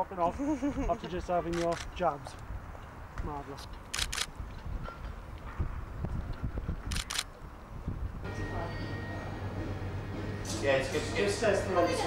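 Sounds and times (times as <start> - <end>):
camera shutter clicking: 1.5 - 1.9, 3.9 - 4.3, 6.9 - 7.3.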